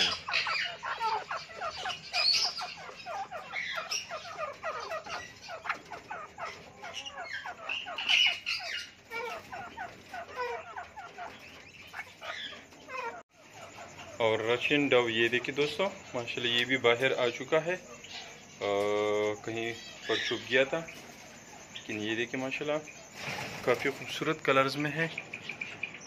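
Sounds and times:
birds chirping rapidly: 0.0s - 26.0s
louder bird calls: 0.0s - 26.0s.

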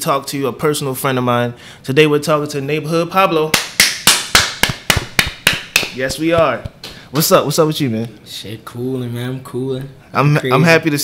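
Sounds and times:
men clapping hands: 3.5s - 7.0s.

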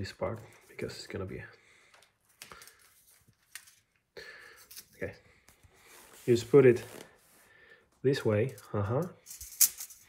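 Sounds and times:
metal parts scraping: 9.2s - 10.0s.

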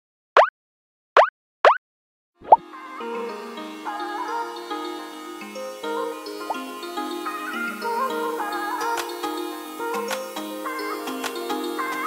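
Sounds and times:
light music: 2.4s - 12.0s.

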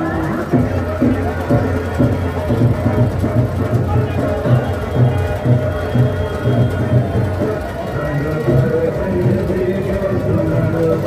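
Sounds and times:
crowd talking and calling: 0.0s - 11.0s.

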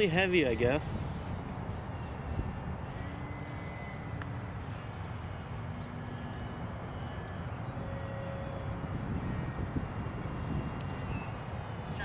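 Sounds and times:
wind rumbling on microphone: 0.6s - 12.0s.

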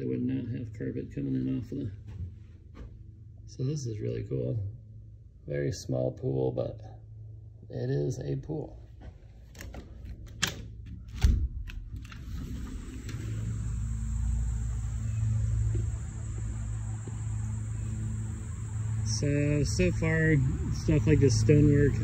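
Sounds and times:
steady low hum: 0.0s - 22.0s
low rumble: 12.5s - 22.0s.

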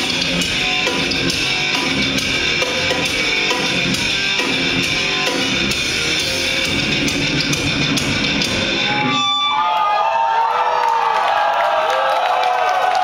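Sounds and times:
thrash metal band playing: 0.0s - 9.5s
electric guitar bending notes: 0.0s - 9.6s.

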